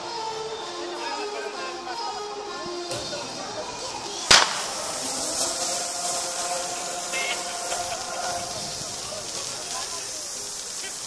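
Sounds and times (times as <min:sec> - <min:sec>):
spark fountain hissing: 0:02.4 - 0:11.0
spark fountain bang: 0:04.1 - 0:11.0.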